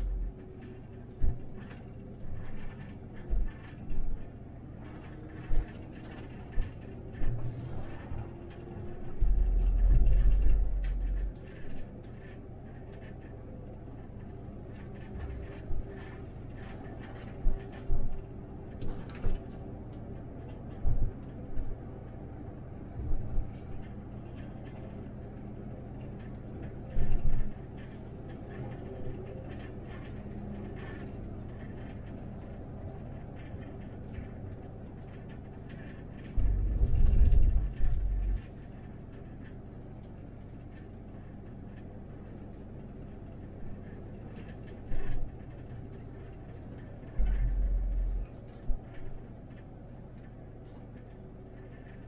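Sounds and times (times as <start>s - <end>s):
bus cabin rumble: 0.0s - 52.0s
faint light rattles: 22.7s - 52.0s
short low thumps: 36.4s - 38.4s.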